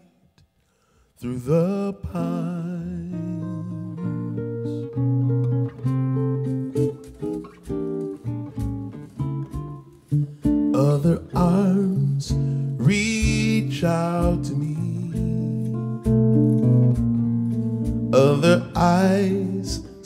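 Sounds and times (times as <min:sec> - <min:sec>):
fingerstyle acoustic guitar: 0:01.5 - 0:20.0.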